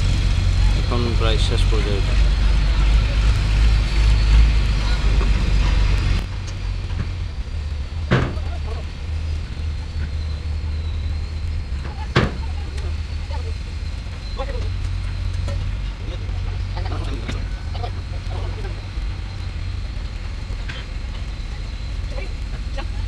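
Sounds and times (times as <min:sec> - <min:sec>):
low steady rumble: 0:00.0 - 0:23.0.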